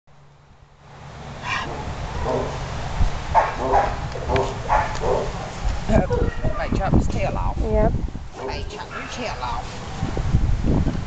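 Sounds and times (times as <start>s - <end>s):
low rumble: 1.2s - 11.0s
dog barking: 1.5s - 2.6s, 3.4s - 5.4s, 8.4s - 9.4s.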